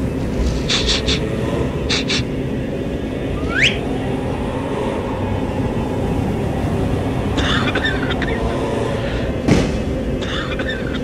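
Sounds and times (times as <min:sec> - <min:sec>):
low rumbling drone: 0:00.0 - 0:11.0
short rising whistle: 0:03.3 - 0:06.4.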